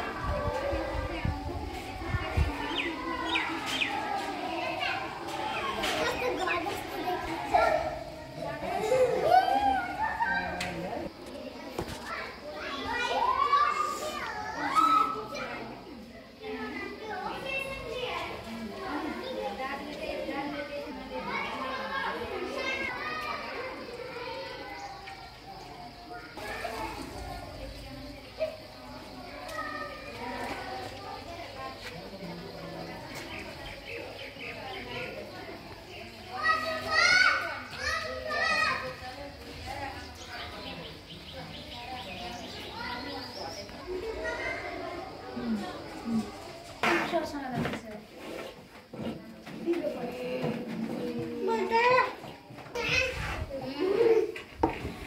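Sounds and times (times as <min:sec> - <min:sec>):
children calling and shouting: 0:00.0 - 0:55.0
faint background chatter: 0:00.0 - 0:55.0.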